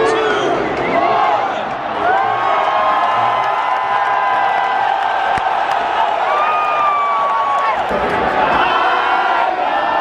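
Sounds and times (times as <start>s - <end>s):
stadium crowd cheering and shouting: 0.0s - 10.0s.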